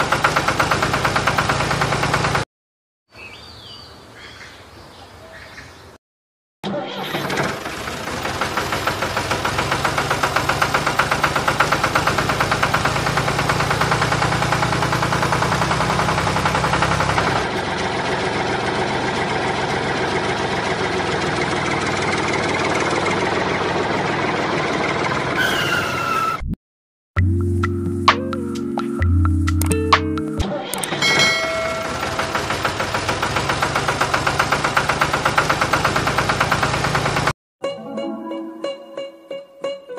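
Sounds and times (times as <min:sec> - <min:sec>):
tractor engine idling: 0:00.0 - 0:02.4, 0:06.8 - 0:25.5, 0:31.1 - 0:37.3
background music: 0:27.2 - 0:30.6, 0:37.6 - 0:39.9.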